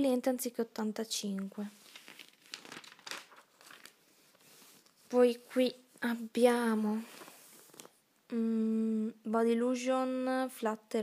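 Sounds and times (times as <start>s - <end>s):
catalogue pages rustling: 1.2s - 8.0s.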